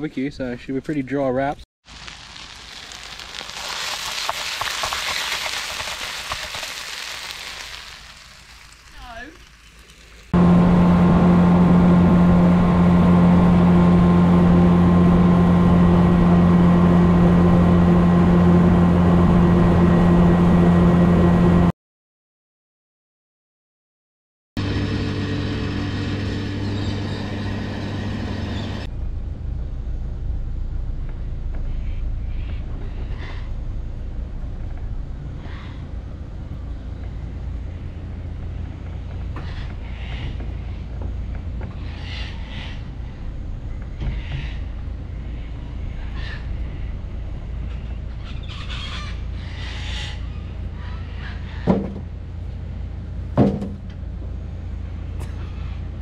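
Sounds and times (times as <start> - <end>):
car engine running low: 10.2 - 21.7, 24.6 - 56.0
sharp knocks: 51.6 - 52.1, 53.4 - 53.9.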